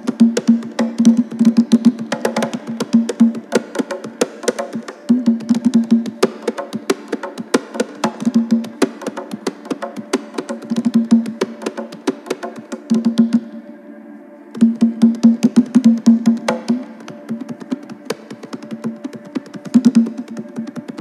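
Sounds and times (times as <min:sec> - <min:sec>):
hand drum played with hands: 0:00.0 - 0:13.4, 0:14.6 - 0:21.0.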